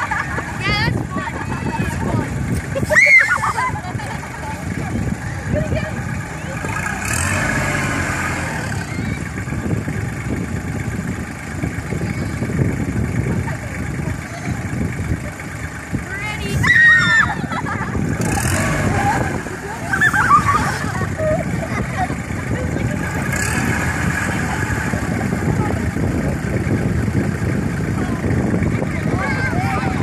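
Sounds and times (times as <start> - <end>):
children's voices and squeals: 0.0 - 6.8, 8.5 - 9.7, 11.8 - 12.6, 16.0 - 18.2, 28.0 - 30.0
tractor diesel engine running: 0.0 - 30.0.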